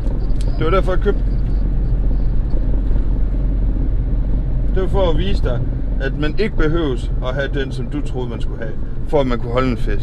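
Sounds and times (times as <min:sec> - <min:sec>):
engine drone and road rumble: 0:00.0 - 0:10.0.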